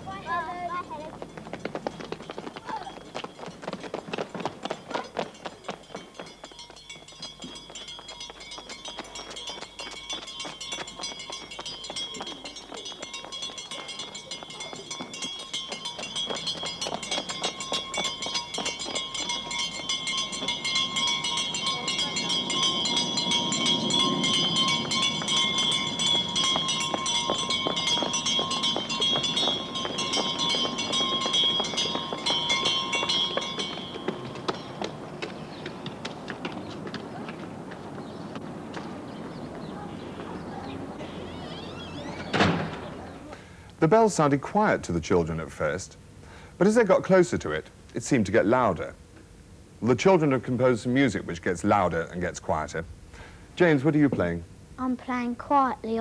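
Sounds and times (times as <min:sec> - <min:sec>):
school bell ringing: 0:00.0 - 0:36.4, 0:39.0 - 0:43.2.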